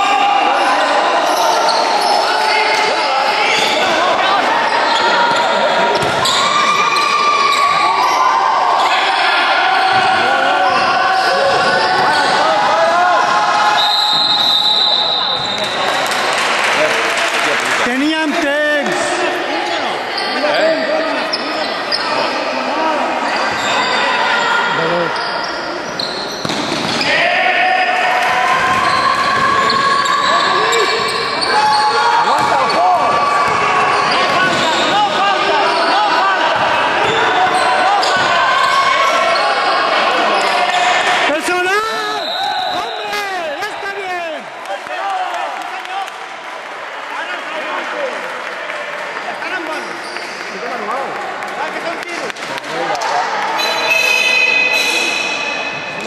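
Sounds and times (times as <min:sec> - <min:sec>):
people shouting in sports hall: 0:00.0 - 0:17.2, 0:17.9 - 0:49.8, 0:50.5 - 0:56.0
basketball bouncing: 0:06.0 - 0:06.2, 0:26.4 - 0:27.1.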